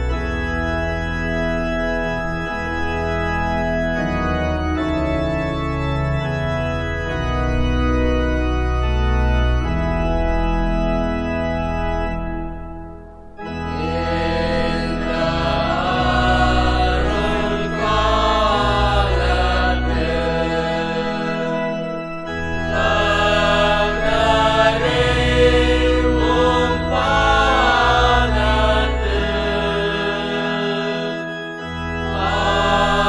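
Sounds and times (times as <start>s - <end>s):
organ playing sustained chords: 0.0s - 33.0s
voices singing a hymn: 13.6s - 33.0s.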